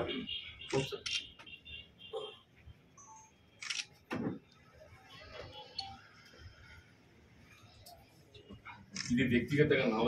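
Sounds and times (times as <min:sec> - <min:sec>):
camera shutter click: 0:03.6 - 0:03.9.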